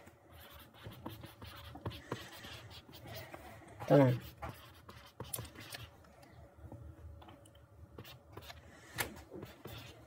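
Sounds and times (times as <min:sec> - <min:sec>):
stylus scratching on tablet screen: 0:00.3 - 0:05.9, 0:08.0 - 0:08.6, 0:09.4 - 0:10.0.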